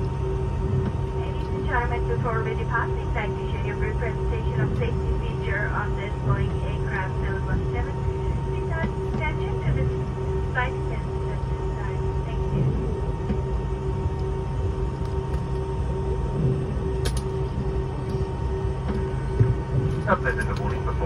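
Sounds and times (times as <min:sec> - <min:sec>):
aircraft cabin drone with whining tones: 0:00.0 - 0:21.0.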